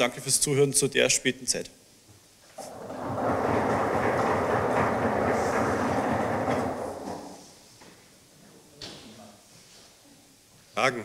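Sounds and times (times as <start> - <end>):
audience applause: 2.6 - 7.5.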